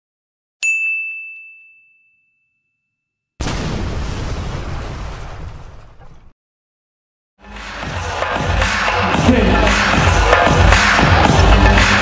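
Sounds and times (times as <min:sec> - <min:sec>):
bright metallic ding: 0:00.6 - 0:02.9.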